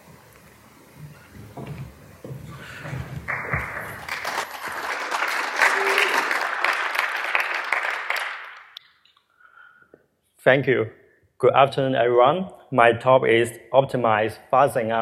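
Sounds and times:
audience applause: 0:02.4 - 0:08.8.

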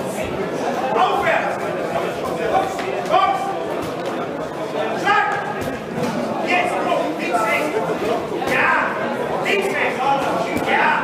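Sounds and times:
murmur of crowd: 0:00.0 - 0:11.0
crowd shouting: 0:04.8 - 0:05.8, 0:08.4 - 0:11.0.

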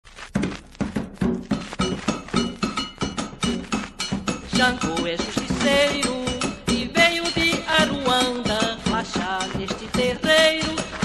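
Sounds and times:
hand drum beating: 0:00.4 - 0:11.0.

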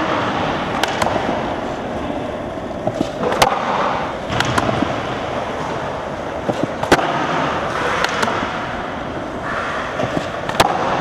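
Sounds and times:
skateboard landing clacks: 0:00.0 - 0:01.5, 0:02.8 - 0:05.7, 0:06.4 - 0:08.7, 0:09.9 - 0:11.0.

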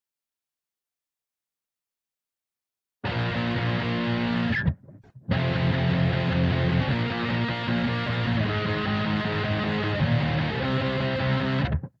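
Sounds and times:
electric guitar chord ringing: 0:03.1 - 0:04.7, 0:05.3 - 0:11.8.

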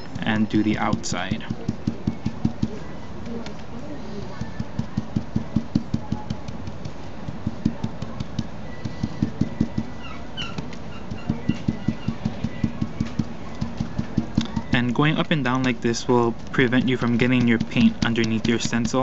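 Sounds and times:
stencil brush soft taps: 0:00.8 - 0:10.0.

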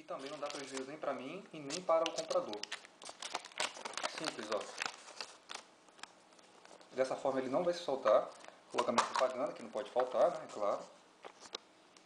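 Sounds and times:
paper rustling: 0:00.1 - 0:01.0, 0:01.6 - 0:07.4, 0:08.3 - 0:11.6.

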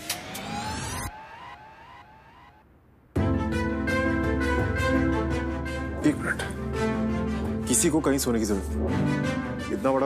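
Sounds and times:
dramatic rising tones: 0:00.0 - 0:03.5.

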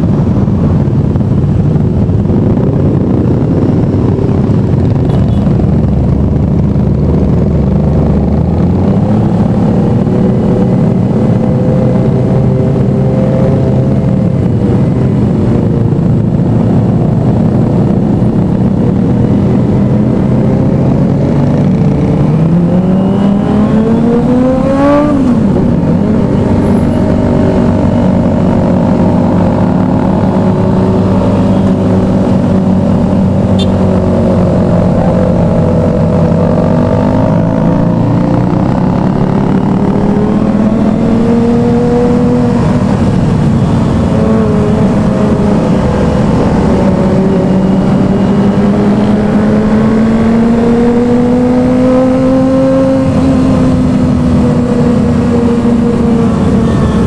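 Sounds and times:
motorcycle engine running: 0:25.3 - 0:57.0.

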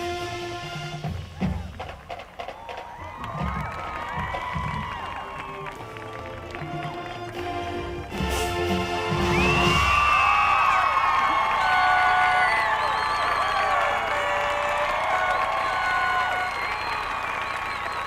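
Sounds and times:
marching band chord: 0:00.0 - 0:02.3, 0:05.1 - 0:10.0
stadium crowd cheering and whistling: 0:01.1 - 0:18.0.

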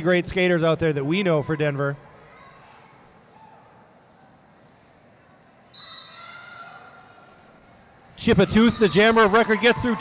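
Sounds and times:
crowd noise: 0:00.0 - 0:10.0
faint hum of a large hall: 0:00.0 - 0:10.0.

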